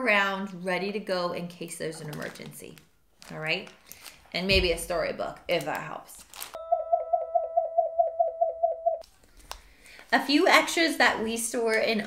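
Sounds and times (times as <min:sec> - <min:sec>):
warbling electronic tone: 0:06.6 - 0:09.0.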